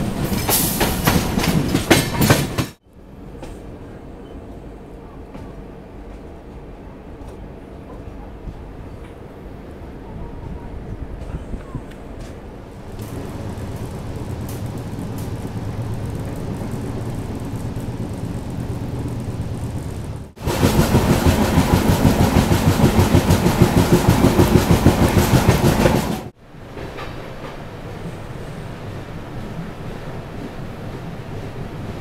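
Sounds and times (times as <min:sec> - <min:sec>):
train coach rumbling on track: 0:00.0 - 0:32.0
rushing noise with rapid clatter: 0:12.9 - 0:26.3.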